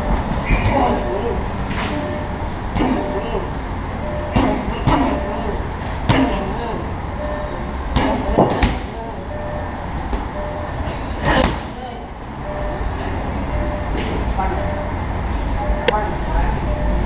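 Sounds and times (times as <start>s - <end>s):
low traffic rumble: 0.0s - 17.0s.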